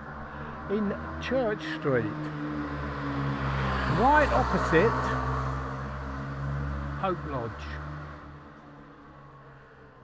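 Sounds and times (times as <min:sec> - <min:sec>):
street background noise: 0:00.0 - 0:10.0
vehicle engine hum: 0:00.0 - 0:10.0.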